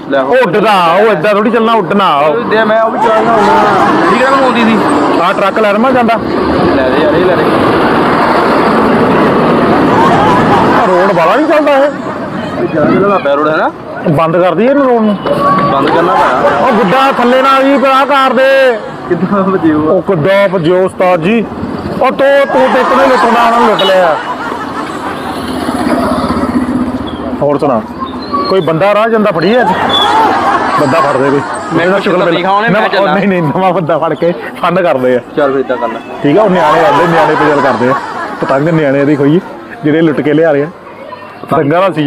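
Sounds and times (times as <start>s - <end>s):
faint voices: 0.0s - 42.0s
loud rushing noise: 2.9s - 13.0s.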